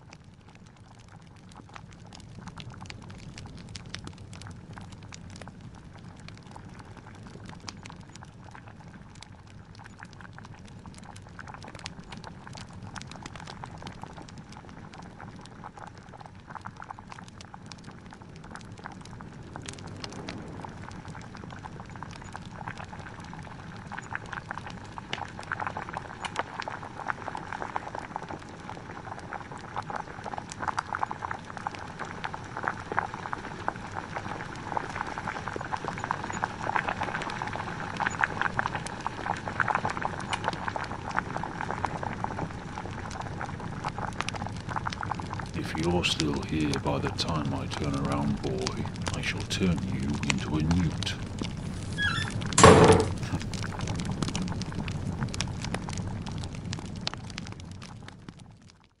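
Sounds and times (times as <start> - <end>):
log fire crackling: 0.0 - 58.8
liquid boiling in glass flask: 0.0 - 59.0.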